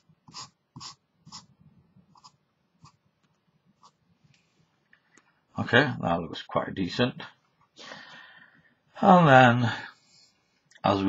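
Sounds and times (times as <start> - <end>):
marker scratching on paper: 0.0 - 1.5, 2.1 - 3.0, 3.8 - 4.0.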